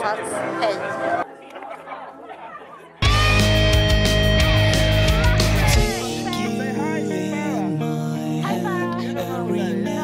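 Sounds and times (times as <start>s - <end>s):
indistinct chatter of people: 0.0s - 10.0s.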